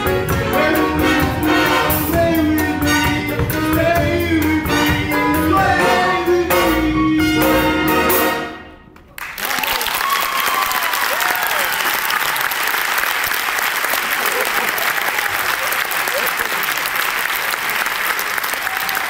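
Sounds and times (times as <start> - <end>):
audience applauding: 9.1 - 19.0.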